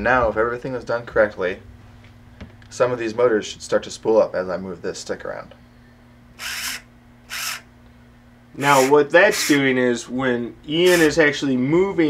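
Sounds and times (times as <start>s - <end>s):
small electric motors spooling up: 6.4s - 7.7s, 8.6s - 9.6s, 10.9s - 11.2s.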